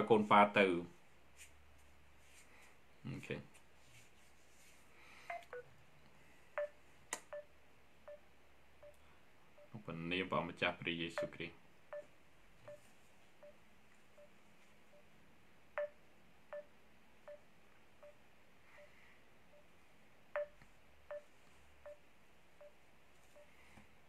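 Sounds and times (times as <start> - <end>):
faint ticking with pings: 5.3 - 5.7, 6.6 - 9.0, 9.6 - 9.8, 11.1 - 13.6, 14.2 - 15.1, 15.8 - 19.7, 20.3 - 23.6.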